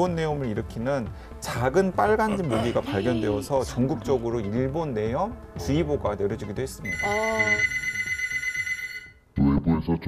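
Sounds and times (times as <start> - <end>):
person speaking: 1.6 - 4.5
high electronic ringing tone: 6.8 - 9.2.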